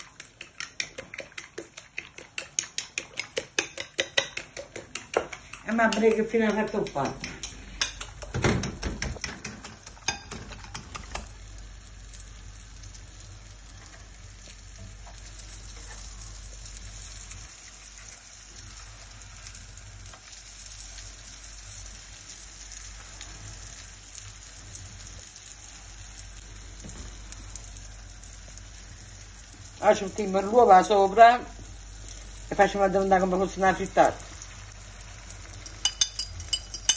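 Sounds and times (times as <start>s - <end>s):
bread sizzling in frying pan: 0.0s - 36.9s
fork clicking against glass bowl: 0.2s - 8.3s, 35.6s - 36.9s.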